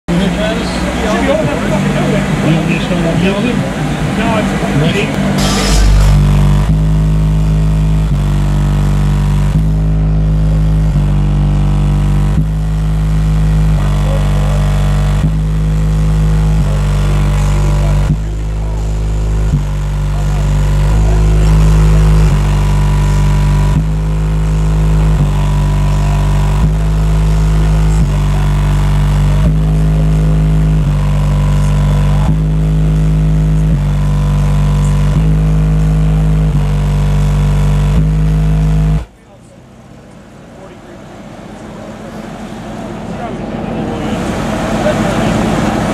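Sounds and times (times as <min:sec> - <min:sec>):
bass-heavy music from car subwoofers: 0:00.1 - 0:45.9.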